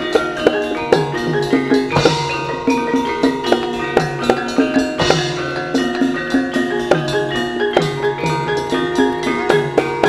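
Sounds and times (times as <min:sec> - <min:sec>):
drum strokes: 0:00.0 - 0:10.0
gamelan metallophones and gongs: 0:00.0 - 0:10.0.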